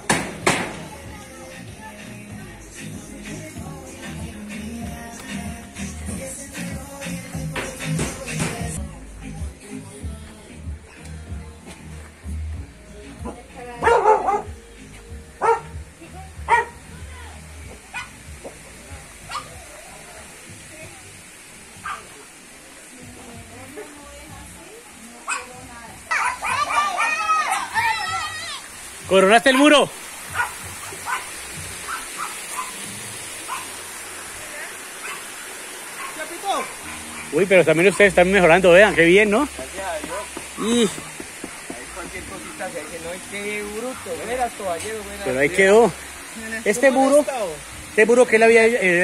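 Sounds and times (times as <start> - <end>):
water rushing over rocks: 0.0 - 49.0
dog barking: 13.8 - 14.6, 15.4 - 15.8, 16.5 - 16.8, 17.9 - 18.2, 19.2 - 19.6, 21.8 - 22.2, 25.2 - 27.8, 30.3 - 33.8, 35.0 - 37.4, 40.0 - 40.4.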